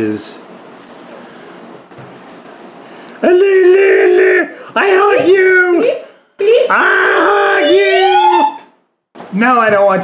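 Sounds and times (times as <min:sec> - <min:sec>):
steady low background noise: 0:00.0 - 0:10.0.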